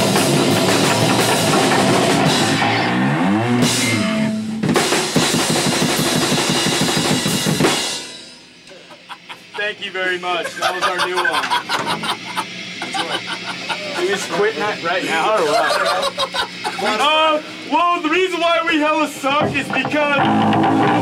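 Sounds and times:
fast drum hits: 0.0 - 2.7, 4.6 - 8.4
rock band playing live: 0.0 - 8.3, 19.4 - 21.0
voices: 8.7 - 20.4.

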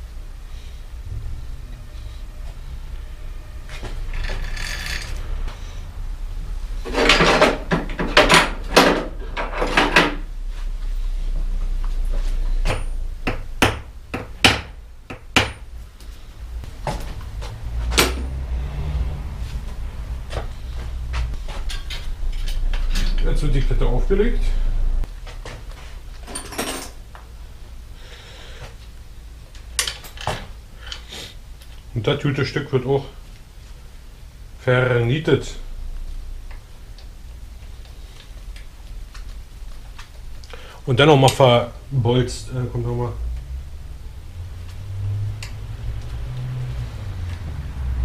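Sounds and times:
metal tools knocking and clinking: 21.6 - 23.7, 26.2 - 27.0.

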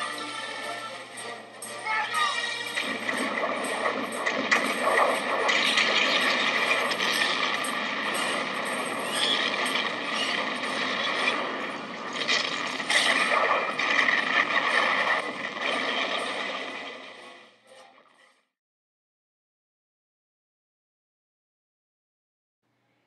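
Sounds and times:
musket and cannon fire: 2.7 - 17.0.

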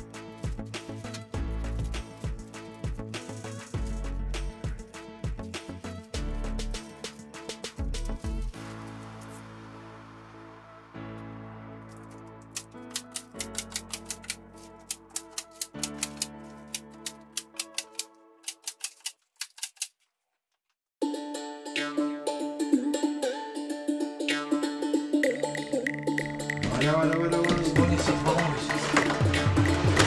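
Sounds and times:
background music: 0.0 - 19.1, 21.0 - 30.0
staple gun clicking: 12.6 - 19.9.

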